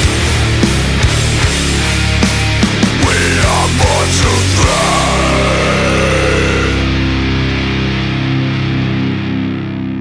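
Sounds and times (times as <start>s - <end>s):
distorted guitar and bass chord: 0.0s - 10.0s.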